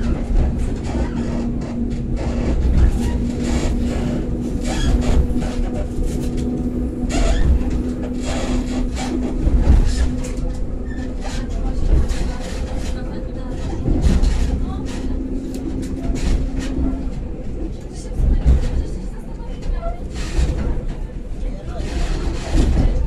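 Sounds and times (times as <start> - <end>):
steady hum: 0.0 - 19.2
train rumble: 0.0 - 23.0.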